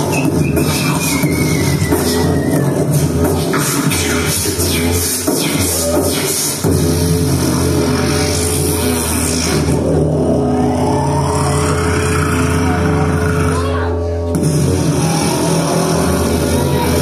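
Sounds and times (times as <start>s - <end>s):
drums: 0.0s - 13.5s, 14.3s - 17.0s
low drone: 6.7s - 17.0s.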